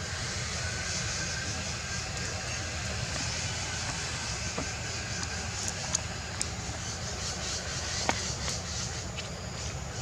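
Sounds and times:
high hiss: 0.0s - 10.0s.

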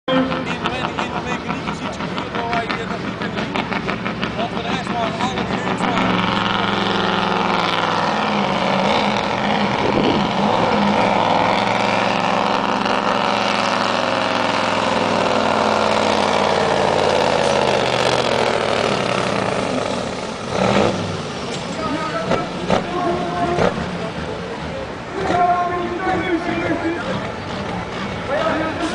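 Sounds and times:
diesel truck engine at full throttle: 0.1s - 28.9s.

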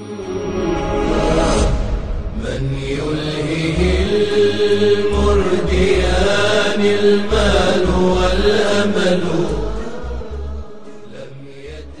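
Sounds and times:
chant-like voices on held notes: 2.3s - 12.0s
low bass notes: 2.3s - 12.0s.

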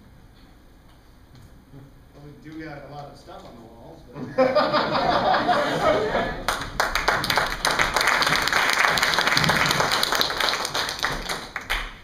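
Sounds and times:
audience applauding: 5.7s - 12.0s.

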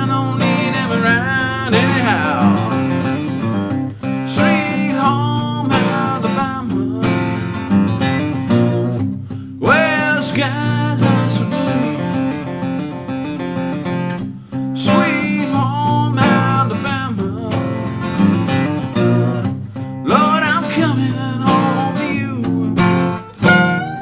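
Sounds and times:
acoustic guitar playing: 0.0s - 24.0s.

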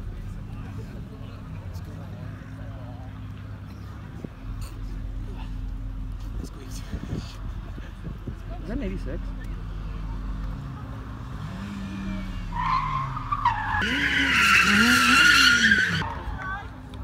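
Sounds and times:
car engine revving: 9.2s - 16.1s
tyre squeal: 12.5s - 16.1s.

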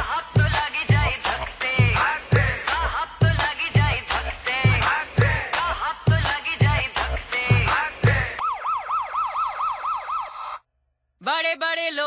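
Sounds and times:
heavy music beat: 0.0s - 8.5s
wailing siren-like tone: 8.4s - 10.6s.

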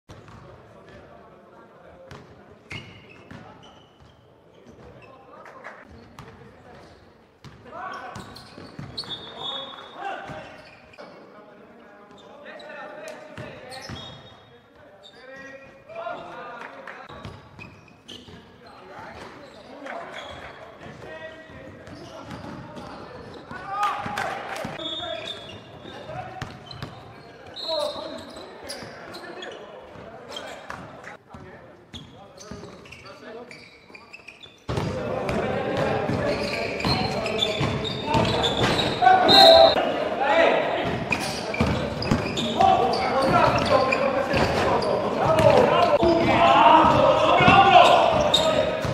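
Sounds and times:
basketballs bouncing on court: 0.1s - 0.6s, 2.1s - 2.3s, 5.9s - 9.3s, 20.2s - 24.8s, 25.4s - 27.3s, 34.7s - 39.6s, 40.8s - 48.9s
players shouting: 37.3s - 48.9s.

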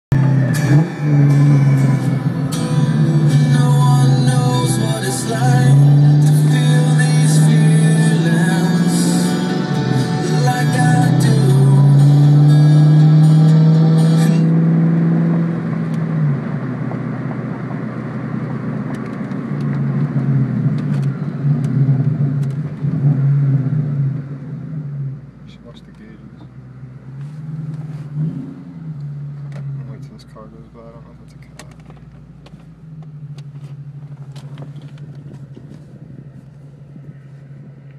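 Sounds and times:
loud bass-heavy music in car: 0.1s - 15.8s
low drone: 0.1s - 18.8s
car engine driving: 0.1s - 37.9s.

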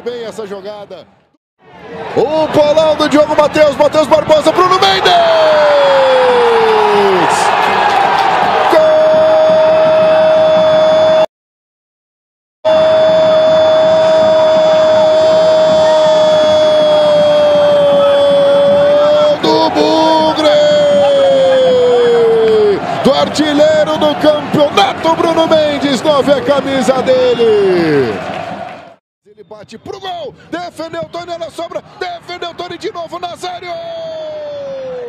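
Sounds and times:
crowd noise: 1.6s - 10.1s, 12.7s - 28.9s.

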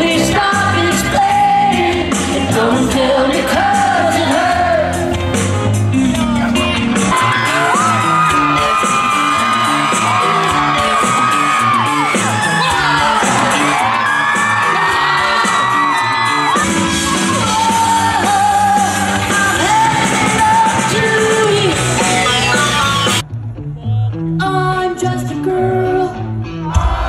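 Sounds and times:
live rock band playing: 0.0s - 23.7s.

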